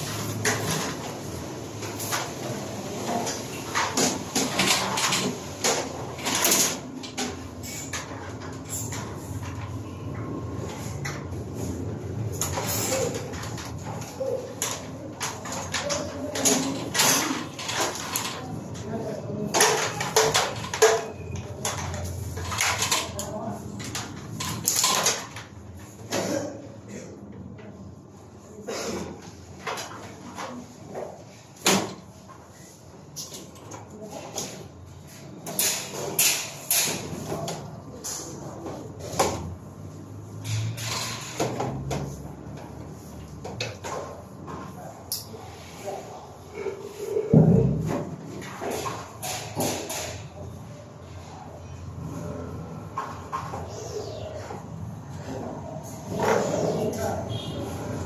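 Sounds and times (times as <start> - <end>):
knocks clicks and scrapes on cables: 0.0 - 26.4, 29.0 - 39.7, 47.3 - 50.6.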